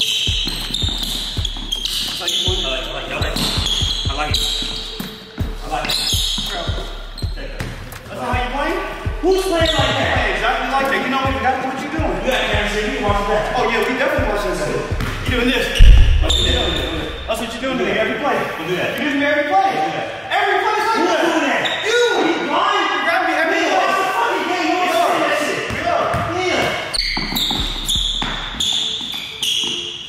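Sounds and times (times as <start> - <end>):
basketball bouncing on gym floor: 15.8 - 17.4
person speaking: 15.8 - 18.6.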